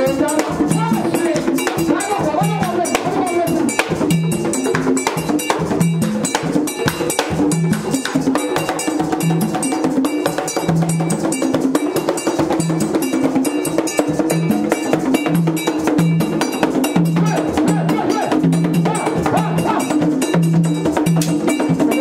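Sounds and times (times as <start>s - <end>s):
hand drums playing fast rhythm: 0.0s - 22.0s
metal bell struck: 0.0s - 22.0s.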